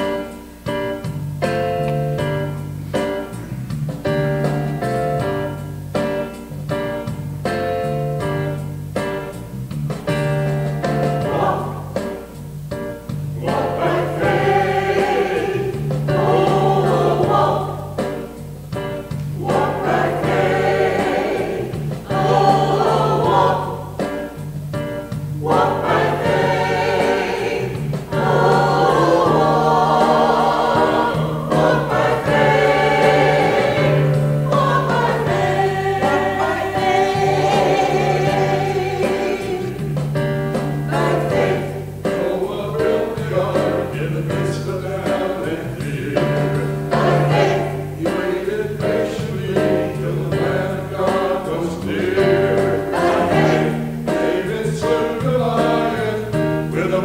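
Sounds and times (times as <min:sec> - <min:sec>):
church choir singing: 0:11.0 - 0:12.4, 0:13.4 - 0:18.4, 0:19.4 - 0:24.4, 0:25.4 - 0:57.0.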